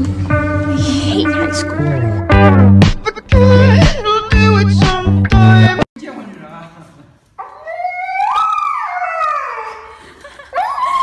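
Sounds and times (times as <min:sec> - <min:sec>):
dog howling: 0:07.4 - 0:09.8.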